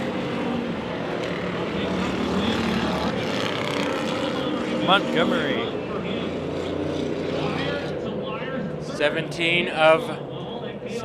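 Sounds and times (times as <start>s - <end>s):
stock car engines running: 0.0s - 11.0s.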